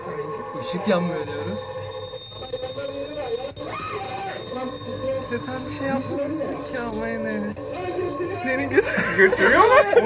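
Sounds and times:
people talking: 0.0s - 1.6s, 2.4s - 10.0s.

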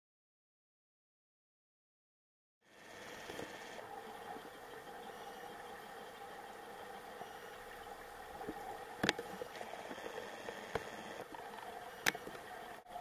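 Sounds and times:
underwater water hum and hiss: 2.6s - 13.0s.

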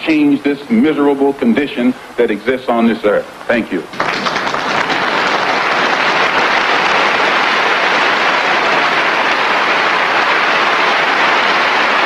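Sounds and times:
audience applauding: 3.9s - 12.0s.

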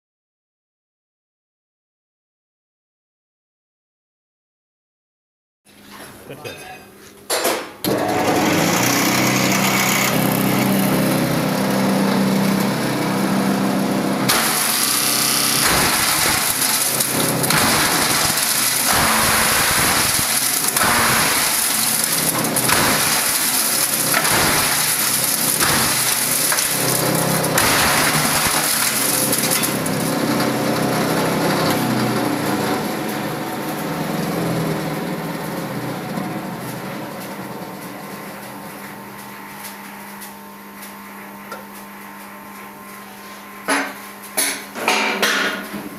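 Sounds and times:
shredder grinding plywood: 7.8s - 40.5s
shredder motor humming: 7.8s - 44.2s.

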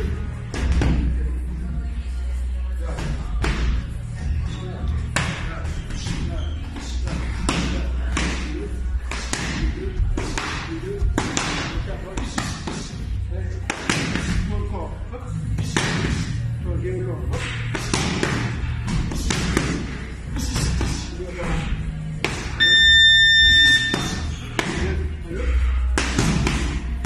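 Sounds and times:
background music with bass: 0.0s - 27.0s
boxing gloves slapping mitts: 7.0s - 13.0s, 13.7s - 14.5s, 15.6s - 16.4s, 17.4s - 21.0s, 23.9s - 25.0s, 25.9s - 27.0s.

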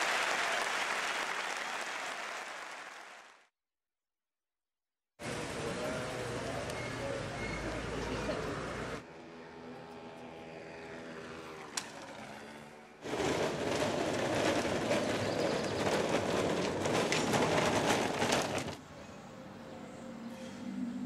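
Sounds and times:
loud rough rattling: 13.0s - 18.8s.

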